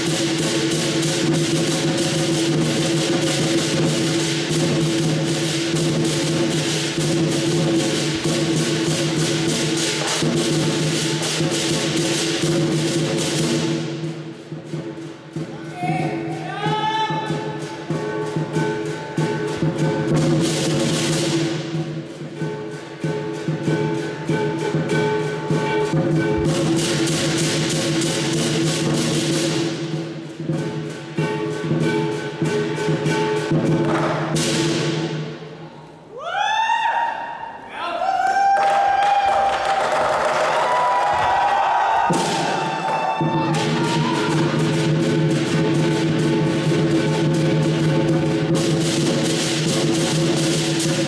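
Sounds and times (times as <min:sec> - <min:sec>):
big drum beating rapidly: 0:00.0 - 0:35.6, 0:38.5 - 0:51.0
cymbals crashing: 0:00.0 - 0:37.7, 0:38.8 - 0:51.0
gong: 0:17.3 - 0:35.2.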